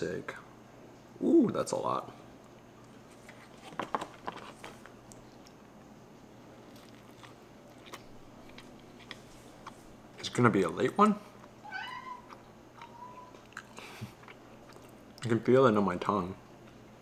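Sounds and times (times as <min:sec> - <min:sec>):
quiet chewing: 0:02.4 - 0:06.0, 0:06.6 - 0:15.4.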